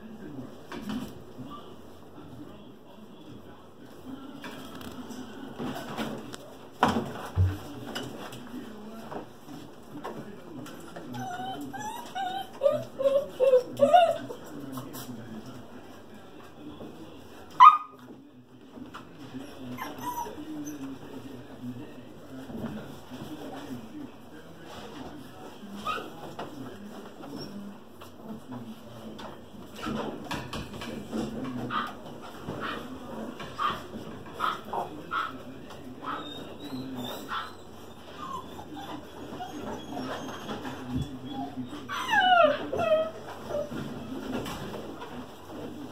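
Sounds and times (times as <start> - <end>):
puppies yipping and whimpering: 11.1 - 14.4, 19.5 - 21.0, 36.0 - 43.8
puppy yipping: 11.1 - 14.4, 17.6 - 18.0, 19.7 - 20.8.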